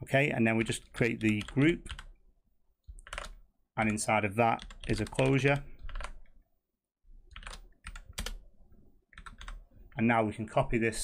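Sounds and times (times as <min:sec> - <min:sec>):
typing on computer keyboard: 0:00.9 - 0:02.1, 0:02.9 - 0:04.0, 0:04.6 - 0:06.4, 0:07.3 - 0:08.4, 0:09.1 - 0:09.6.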